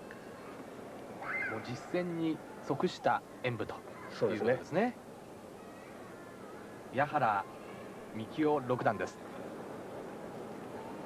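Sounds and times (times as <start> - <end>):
videotape hiss: 0.0 - 11.0.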